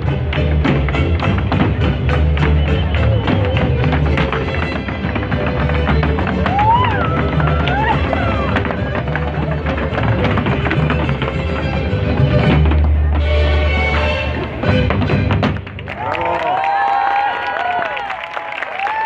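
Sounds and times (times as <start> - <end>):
heel and toe stamps on stage: 0.0 - 15.8
folk dance music: 0.0 - 18.0.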